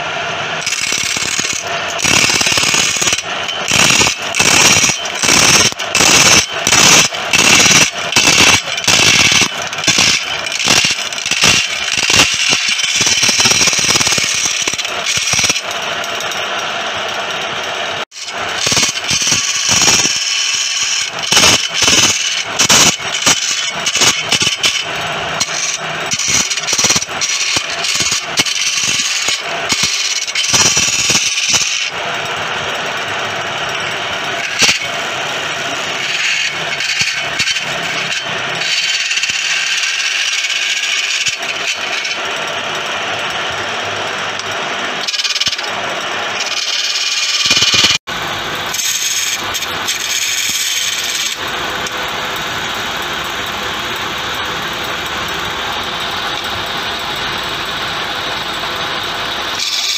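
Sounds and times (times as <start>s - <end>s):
chisel scraping on wood lathe: 18.2s - 32.1s, 33.3s - 42.6s, 44.3s - 45.7s, 46.3s - 47.9s, 48.7s - 52.0s, 59.3s - 59.9s.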